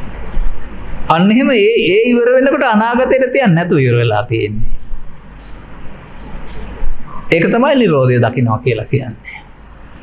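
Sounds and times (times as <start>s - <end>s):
room noise rumble and hiss: 0.0s - 10.0s.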